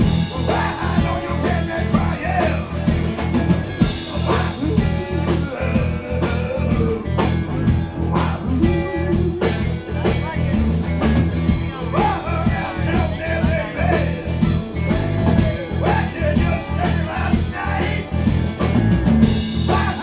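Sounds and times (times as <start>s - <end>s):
live blues band playing: 0.0s - 20.0s
sliding guitar lead line: 0.0s - 20.0s.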